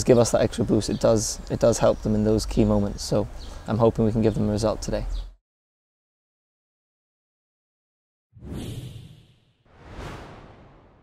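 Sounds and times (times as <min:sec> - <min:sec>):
whoosh sound effects: 0:08.4 - 0:11.0.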